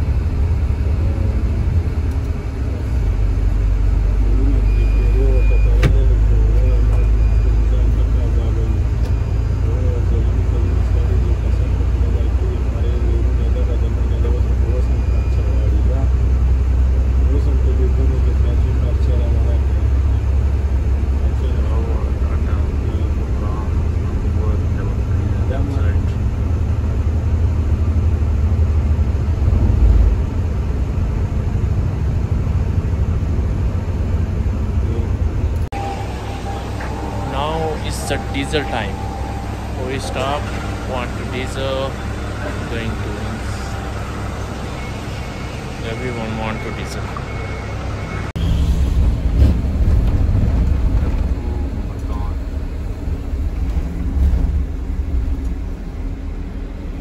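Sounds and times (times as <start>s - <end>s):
bus engine and tyres rumbling: 0.0s - 57.0s
indistinct voices: 1.0s - 26.4s, 34.7s - 49.2s.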